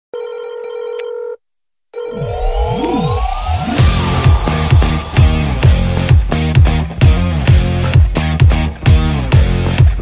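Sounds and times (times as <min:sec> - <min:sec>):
telephone ringing: 0:00.1 - 0:02.8.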